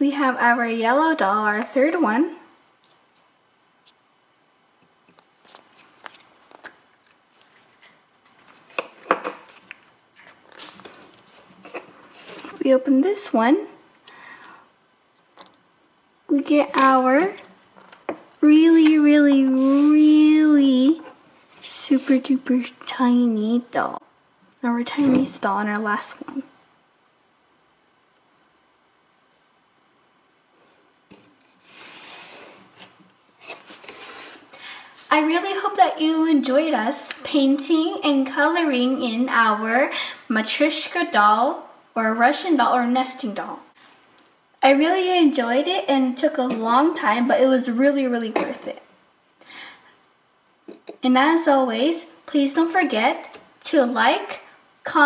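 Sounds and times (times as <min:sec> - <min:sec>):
soft rubbing: 0:18.6 - 0:22.4.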